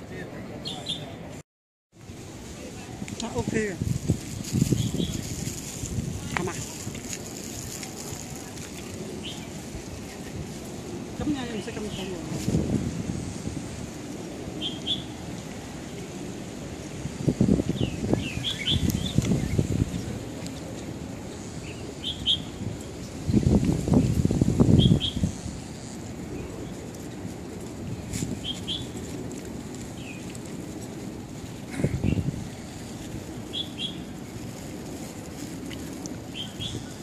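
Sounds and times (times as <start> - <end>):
small birds chirping: 3.3 - 5.6, 7.7 - 10.2, 14.5 - 15.2, 15.9 - 25.4, 28.0 - 29.2, 29.9 - 30.4, 31.7 - 34.6, 35.6 - 37.0.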